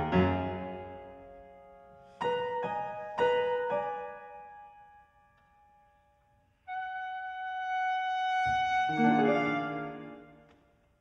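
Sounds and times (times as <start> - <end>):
piano chord: 0.0 - 4.3.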